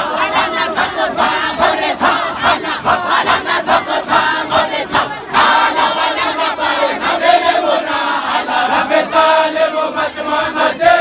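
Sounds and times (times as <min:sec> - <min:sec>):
men chanting together: 0:00.0 - 0:11.0.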